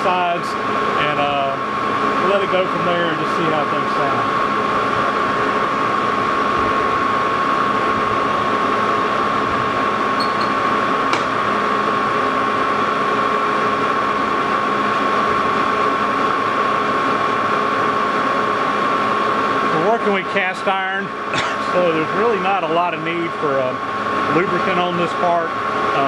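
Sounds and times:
high cutting whine: 0.0 - 26.0
lathe machine hum: 0.0 - 26.0.

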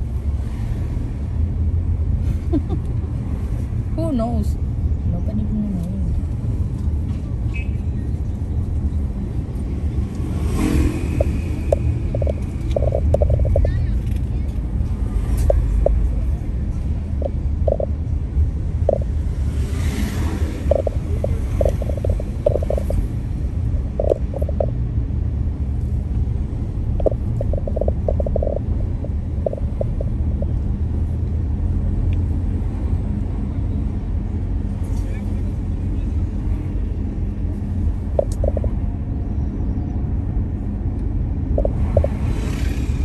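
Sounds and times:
car interior low rumble: 0.0 - 10.3, 11.0 - 43.0.

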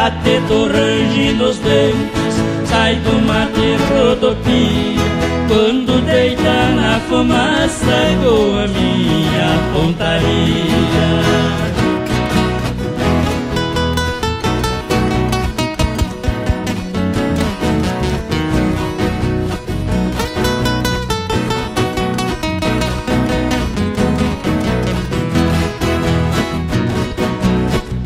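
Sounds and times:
two folk guitars picking: 0.0 - 28.0.

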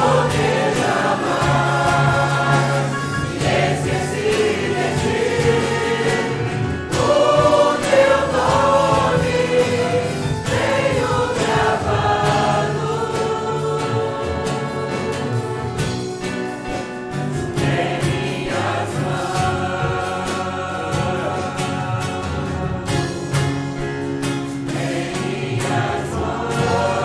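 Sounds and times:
acoustic guitars: 0.0 - 27.0
choir singing a hymn: 0.0 - 27.0
keyboard: 0.0 - 27.0.

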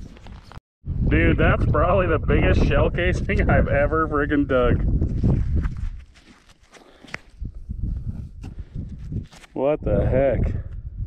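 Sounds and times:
gloves rubbing and scraping: 4.9 - 9.6.

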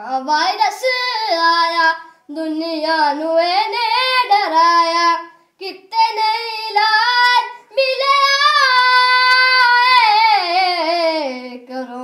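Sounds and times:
boy singing solo: 0.0 - 12.0.

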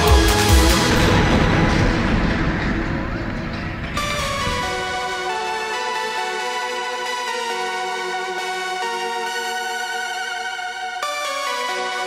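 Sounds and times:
noisy rattling music: 0.0 - 12.0.

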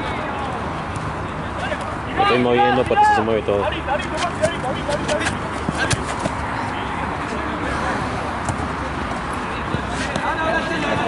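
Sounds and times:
hubbub of distant voices: 0.0 - 11.0.

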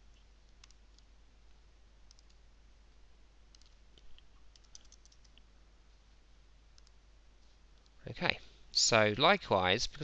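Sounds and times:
computer mouse clicks: 0.5 - 1.1, 2.1 - 2.4, 3.5 - 5.5, 6.8 - 7.0.

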